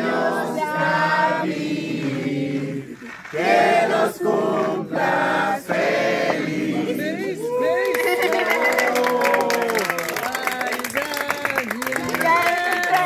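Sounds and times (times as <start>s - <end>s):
group singing birthday song: 0.0s - 7.5s.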